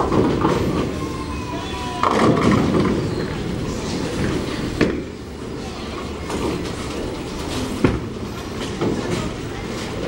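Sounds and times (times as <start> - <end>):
bowling balls rumbling down lanes: 0.0 - 5.2.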